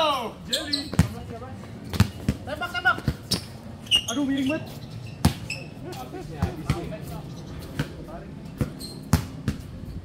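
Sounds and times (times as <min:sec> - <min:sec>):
basketball bouncing on hard court: 0:00.8 - 0:01.3, 0:01.9 - 0:03.5, 0:05.2 - 0:05.5, 0:08.6 - 0:09.7.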